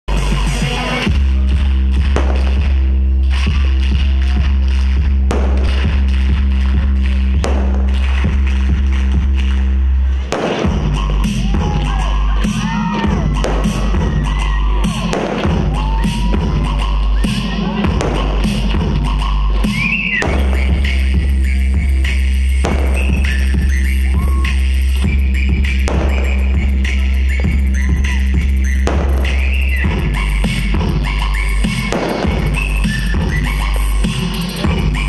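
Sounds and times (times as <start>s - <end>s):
dance music with heavy bass: 0.1s - 35.0s.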